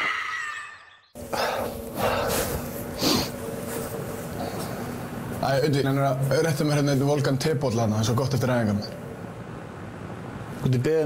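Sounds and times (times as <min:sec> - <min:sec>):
man breathing hard: 0:01.2 - 0:03.4
steady low hum: 0:01.2 - 0:11.0
towel rubbing face: 0:01.6 - 0:05.1.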